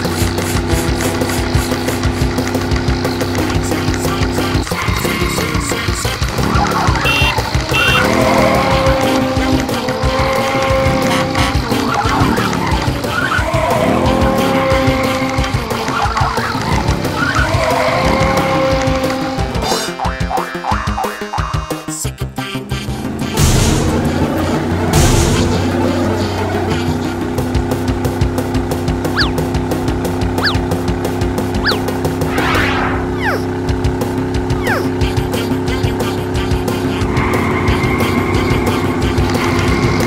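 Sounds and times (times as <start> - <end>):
cartoon engine revving and zooming: 0.0 - 21.7, 22.7 - 27.6, 28.3 - 40.0
background music: 0.0 - 40.0.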